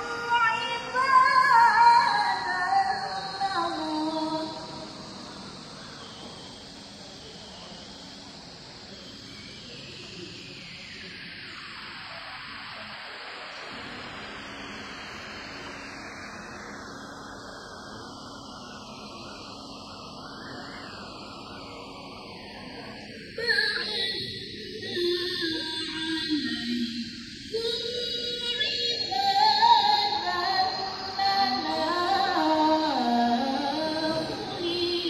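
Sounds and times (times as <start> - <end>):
woman reciting melodically: 0.0 - 4.9, 23.4 - 35.0
steady hiss: 0.0 - 35.0.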